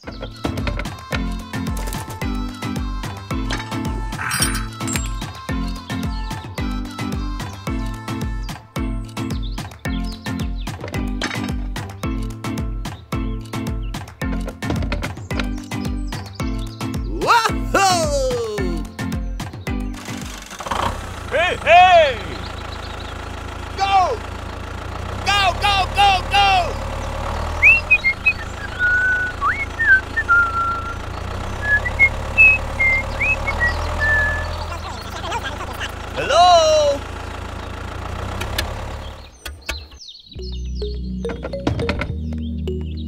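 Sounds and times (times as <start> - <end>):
music: 0.0 - 20.8, 40.3 - 43.0
tractor engine idling: 8.4 - 43.0
short whistle-like chirps: 31.6 - 34.5.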